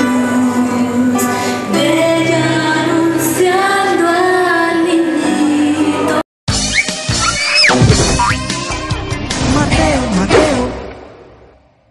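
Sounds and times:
pitch sliding sound effects: 6.7 - 8.5.

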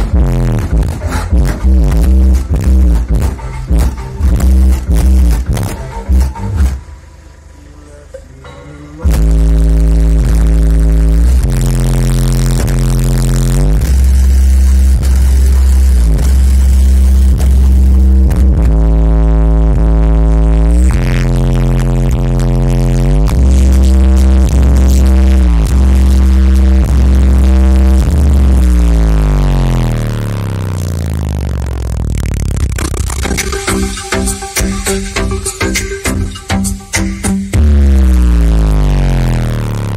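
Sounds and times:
bass-heavy electronic music: 0.0 - 39.9
falling bass sweeps: 9.0 - 39.9.

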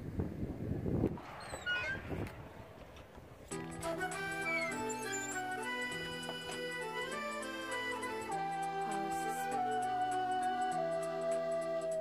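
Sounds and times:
wind buffeting microphone: 0.0 - 6.2
high wavering squeak: 1.4 - 2.2, 3.6 - 11.2.

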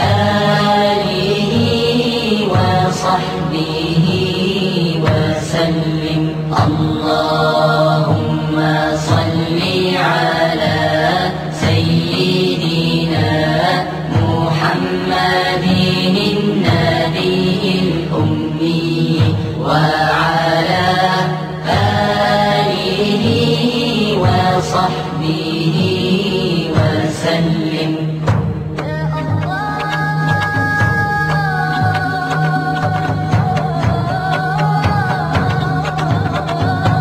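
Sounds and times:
devotional chant singing: 0.0 - 37.0.

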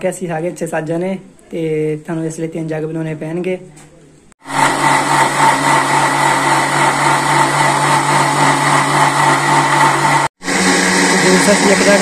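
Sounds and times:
electric blender running: 4.4 - 12.0.

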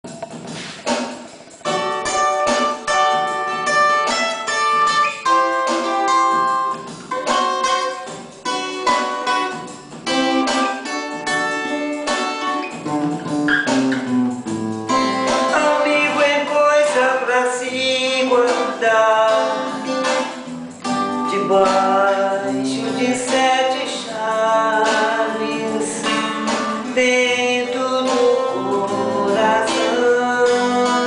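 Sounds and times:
fingerpicked acoustic guitar: 0.0 - 31.0.

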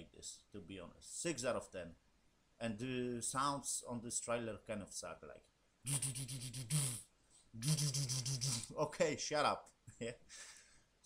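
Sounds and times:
man imitating buzzing sound: 5.8 - 8.8.

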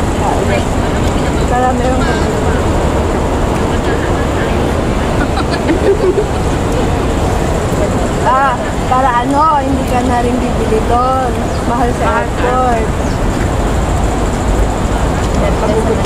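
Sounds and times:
women talking: 0.0 - 13.1, 15.3 - 16.0
city traffic rumble: 0.0 - 16.0.

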